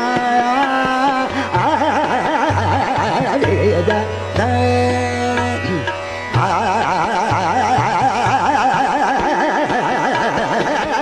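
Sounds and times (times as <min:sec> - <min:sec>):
harmonium: 0:00.0 - 0:11.0
tabla strokes: 0:00.0 - 0:11.0.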